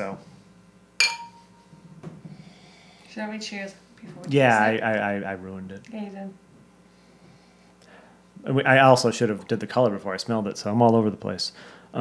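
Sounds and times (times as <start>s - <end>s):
glasses clinking: 1.0s - 1.6s.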